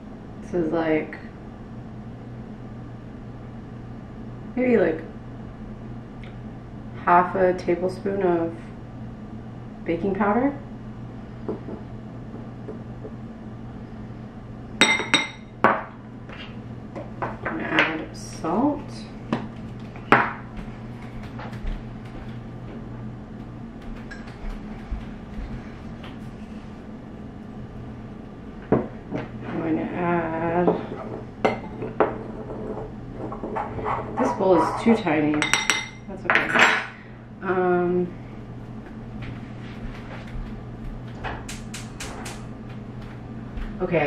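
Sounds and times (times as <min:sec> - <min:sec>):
metal spoon clinking on ceramic bowl: 0:14.8 - 0:15.4, 0:35.4 - 0:36.0.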